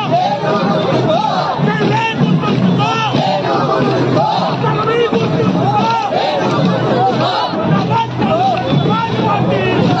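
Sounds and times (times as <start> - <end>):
crowd shouting slogans: 0.0 - 10.0.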